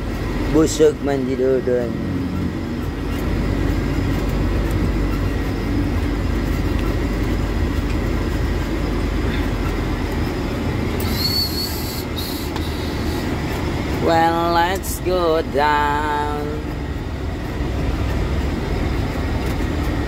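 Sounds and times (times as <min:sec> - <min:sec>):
truck engine and road rumble: 0:00.0 - 0:20.0.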